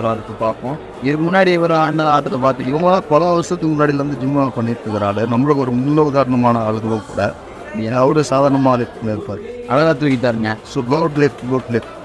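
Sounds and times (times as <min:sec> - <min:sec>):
man speaking through loudspeaker: 0:00.0 - 0:12.0.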